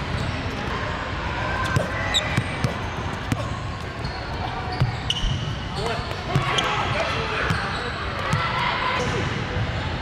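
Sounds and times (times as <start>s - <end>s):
players' voices and shouts: 0.4s - 10.0s.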